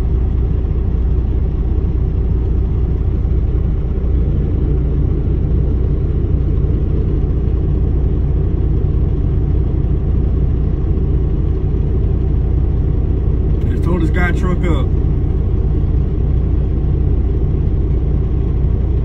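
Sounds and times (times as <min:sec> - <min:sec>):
diesel engine idling: 0:00.0 - 0:19.0
person speaking: 0:13.6 - 0:15.0.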